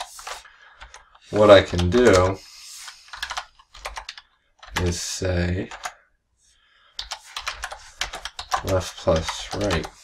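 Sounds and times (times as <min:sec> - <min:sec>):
typing on a computer keyboard: 0:00.0 - 0:02.3, 0:03.1 - 0:05.0, 0:05.7 - 0:06.0, 0:07.0 - 0:10.0.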